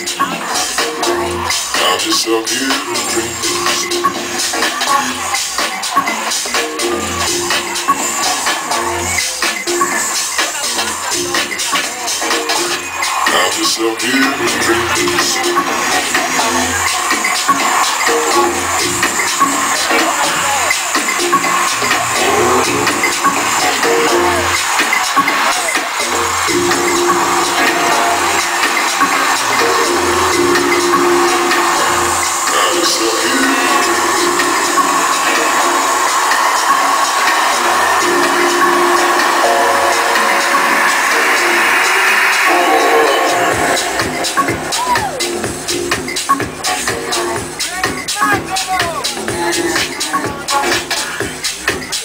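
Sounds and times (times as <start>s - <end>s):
house music over sound system: 0.0s - 52.0s.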